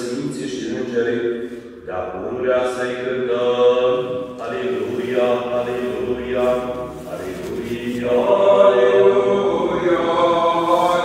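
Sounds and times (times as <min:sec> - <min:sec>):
church chant voices singing: 0:00.0 - 0:11.0.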